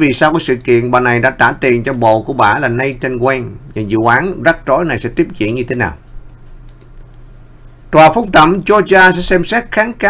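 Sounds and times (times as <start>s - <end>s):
low steady hum: 0.0s - 10.0s
computer keyboard clicks: 6.3s - 7.2s.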